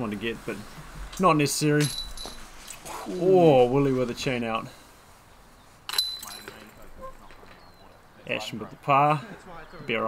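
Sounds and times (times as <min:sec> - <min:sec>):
disc striking metal chains: 0:01.8 - 0:02.5, 0:05.9 - 0:06.8.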